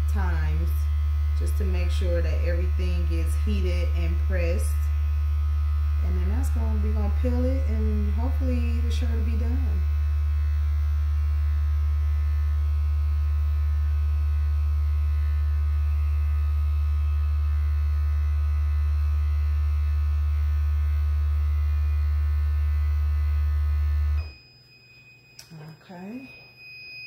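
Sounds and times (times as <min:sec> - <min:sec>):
heat press humming: 0:00.0 - 0:27.0.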